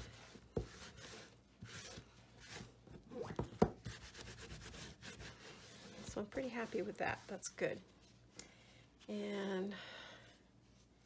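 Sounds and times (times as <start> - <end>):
paper towel wiping: 3.8 - 8.2.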